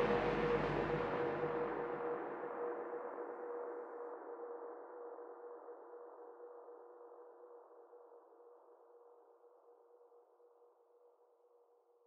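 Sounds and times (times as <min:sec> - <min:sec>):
sustained synth tone: 0:00.0 - 0:02.2.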